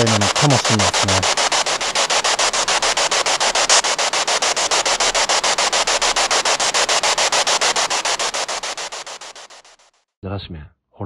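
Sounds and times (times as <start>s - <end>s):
radio static bursts: 0.0s - 9.9s.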